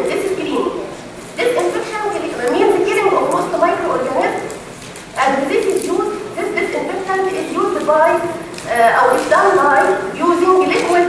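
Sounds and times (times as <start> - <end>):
woman speaking over microphone: 0.0 - 4.6, 5.2 - 11.0.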